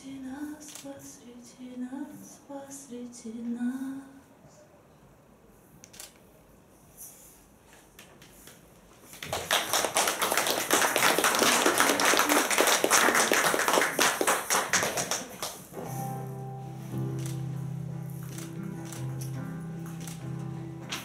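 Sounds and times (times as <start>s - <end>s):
audience applause: 9.2s - 15.7s.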